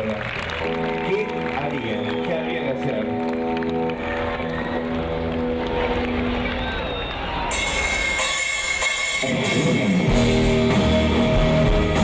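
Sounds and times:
crowd noise: 0.0s - 12.0s
live rock band: 0.0s - 12.0s.

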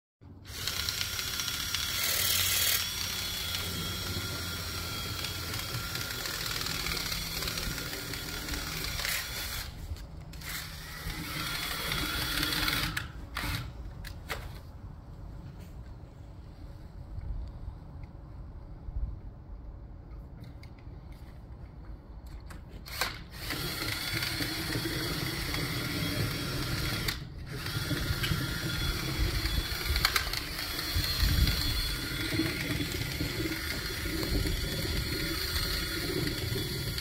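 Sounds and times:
drill motor whining: 0.5s - 13.7s, 22.9s - 37.0s.

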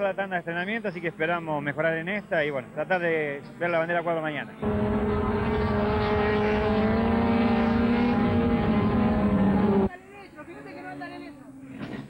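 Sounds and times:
race car engine at high revs: 4.6s - 9.9s.

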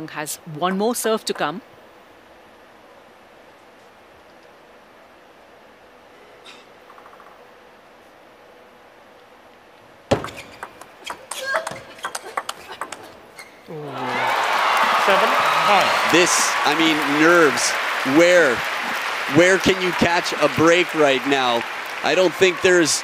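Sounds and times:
ping pong ball clicking: 10.2s - 13.2s.

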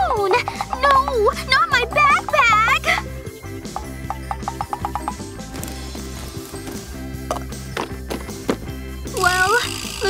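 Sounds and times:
light background music: 0.0s - 10.0s
items dropping into cardboard box: 5.5s - 8.7s.

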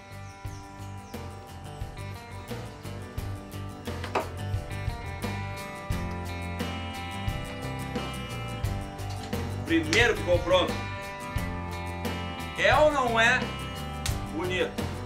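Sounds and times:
background music with beat: 0.0s - 15.0s.

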